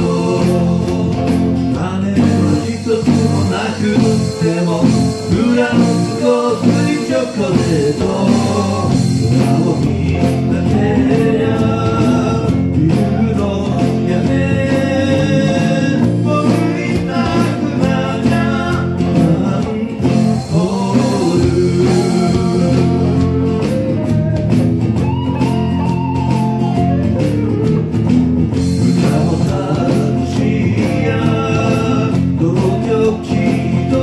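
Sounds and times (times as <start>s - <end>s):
man singing: 0.0s - 25.2s, 28.7s - 34.0s
acoustic guitar: 0.0s - 34.0s
electric bass: 0.0s - 34.0s
electric guitar: 0.0s - 34.0s.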